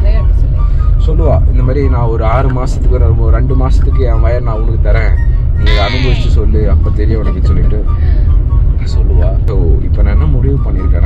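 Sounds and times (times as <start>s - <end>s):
people talking: 0.0s - 0.4s, 1.0s - 7.9s, 8.8s - 11.0s
road and engine rumble: 0.0s - 11.0s.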